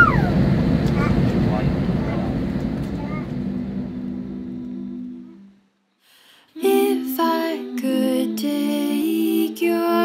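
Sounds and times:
jet cabin rumble: 0.0s - 5.4s
steady low hum: 0.0s - 10.0s.

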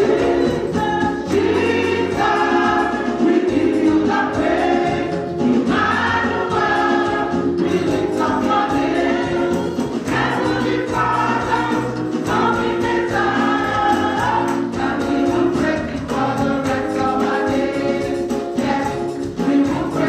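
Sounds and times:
women singing gospel: 0.0s - 20.0s.

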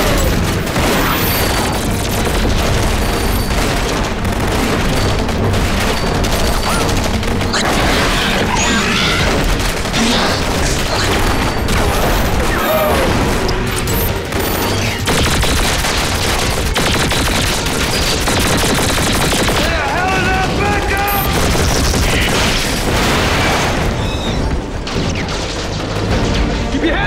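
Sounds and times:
gunfire: 0.0s - 26.7s
booming explosions: 0.0s - 26.8s
dramatic music score: 0.0s - 27.0s.

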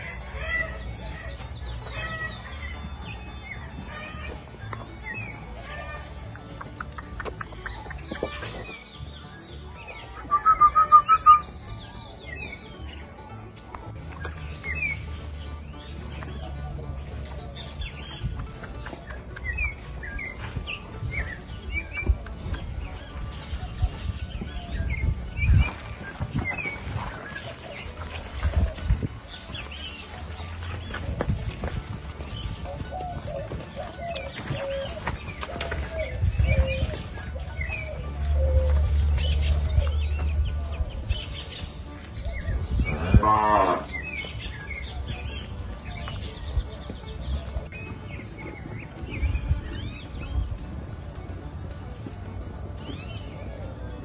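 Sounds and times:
cattle mooing: 42.9s - 44.0s.

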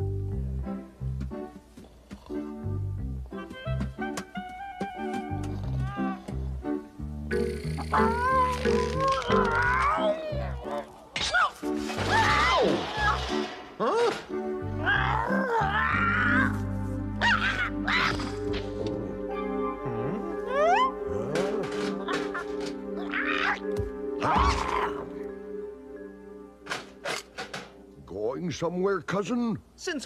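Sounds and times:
background music: 0.0s - 29.6s
cartoon cat yowls and cries: 5.8s - 6.2s, 7.9s - 11.5s, 14.8s - 16.6s, 17.2s - 18.2s, 20.5s - 21.3s, 23.0s - 23.6s
cartoon cat meowing: 7.9s - 10.8s.

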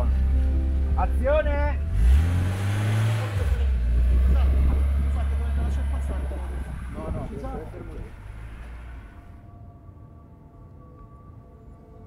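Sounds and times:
car engine revving and rumbling: 0.0s - 9.5s.

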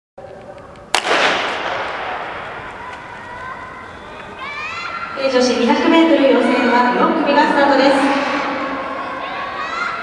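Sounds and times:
echo ringing around stadium: 0.2s - 10.0s
starting pistol shot: 0.9s - 2.6s.

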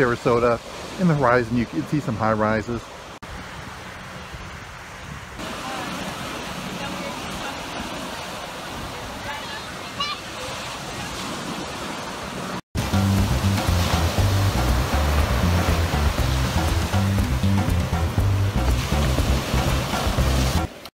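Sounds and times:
surf washing up on beach: 0.0s - 20.9s
upbeat latin-style music: 12.8s - 20.7s.

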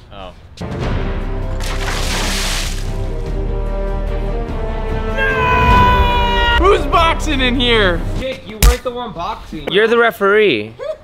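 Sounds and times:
water splashing on face: 1.5s - 3.1s.

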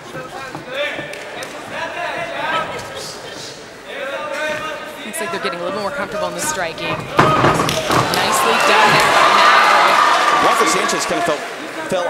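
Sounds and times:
voices in a large hall: 0.0s - 12.0s.

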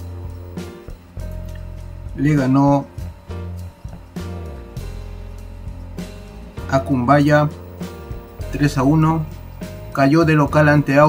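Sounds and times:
background music with low bass: 0.0s - 11.0s.

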